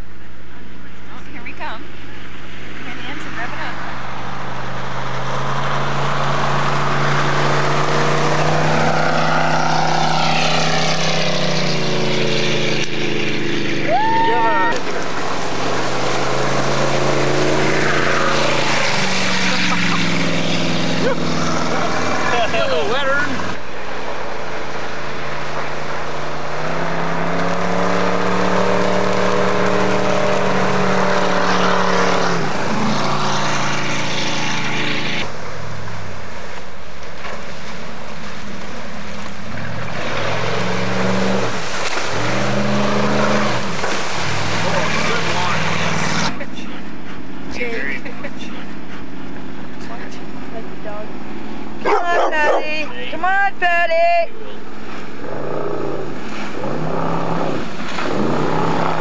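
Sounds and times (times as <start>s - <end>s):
motorboat engine running: 41.6s - 52.9s.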